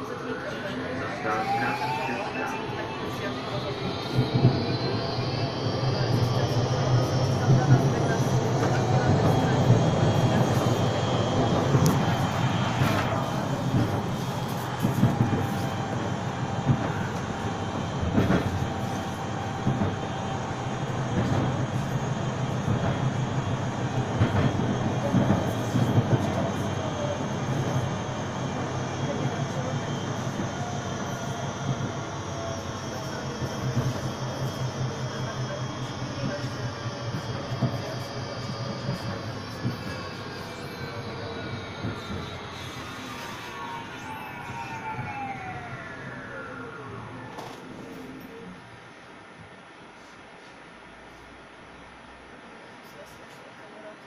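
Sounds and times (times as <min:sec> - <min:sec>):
tram electric motor whine: 0:00.0 - 0:49.8
tram running on rails: 0:00.0 - 0:54.0.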